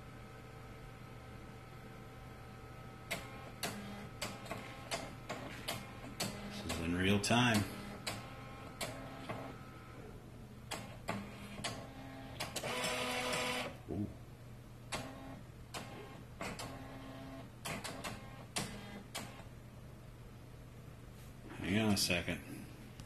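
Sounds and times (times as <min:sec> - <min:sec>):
printer mechanical hums: 0:01.7 - 0:13.8, 0:14.9 - 0:19.5
printer whirring: 0:02.9 - 0:13.8, 0:14.9 - 0:19.5
printer clicks and clunks: 0:03.1 - 0:06.9, 0:07.5 - 0:09.5, 0:10.7 - 0:13.7, 0:14.9 - 0:19.4.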